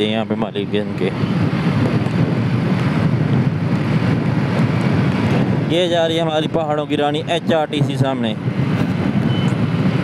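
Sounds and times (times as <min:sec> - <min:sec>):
motorcycle engine cruising: 0:00.0 - 0:10.0
wind and road noise: 0:00.0 - 0:10.0.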